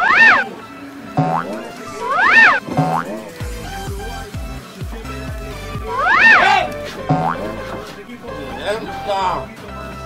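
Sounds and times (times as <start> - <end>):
tone gliding up and down: 0.0 - 0.5, 1.2 - 3.3
low boing tones dropping: 1.2 - 3.2, 7.1 - 7.6.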